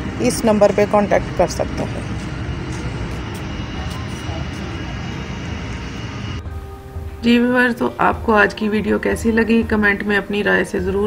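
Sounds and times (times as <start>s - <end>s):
faint distant voices: 0.0s - 6.4s
rumbling hiss: 0.0s - 9.5s.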